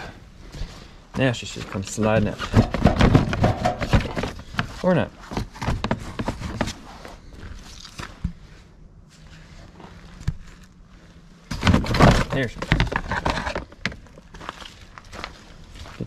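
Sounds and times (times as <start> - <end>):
plastic panel clicking and scuffing: 2.4 - 6.8, 11.5 - 14.0.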